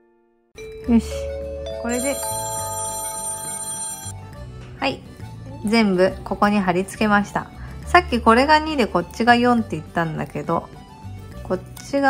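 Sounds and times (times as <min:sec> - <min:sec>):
telephone ringing: 0:01.8 - 0:04.4.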